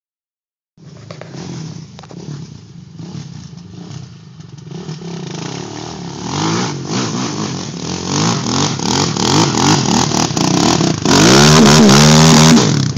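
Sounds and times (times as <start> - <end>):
wheels spinning throwing dirt: 0.8 - 12.9
quad bike engine revving: 1.1 - 12.9.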